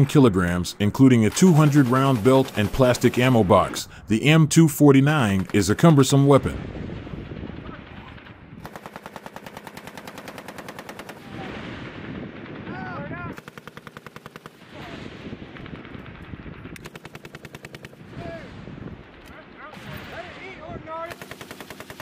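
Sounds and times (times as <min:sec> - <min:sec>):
machine gun automatic fire: 0:01.3 - 0:03.4, 0:05.3 - 0:11.5, 0:13.3 - 0:14.7, 0:15.5 - 0:18.0, 0:21.0 - 0:22.0.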